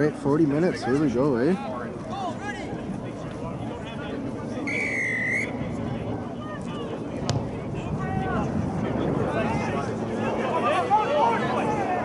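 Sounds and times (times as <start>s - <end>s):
referee whistle blast: 4.6s - 5.6s.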